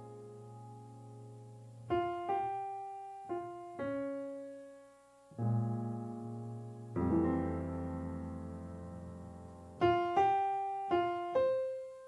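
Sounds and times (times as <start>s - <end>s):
grand piano playing slow jazz: 0.0s - 12.0s.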